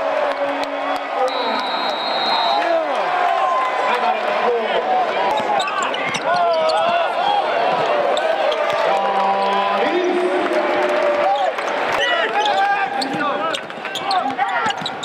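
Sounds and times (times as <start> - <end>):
crowd voices and shouts: 0.0 - 15.0
basketball bouncing on court: 5.4 - 7.9, 13.9 - 15.0.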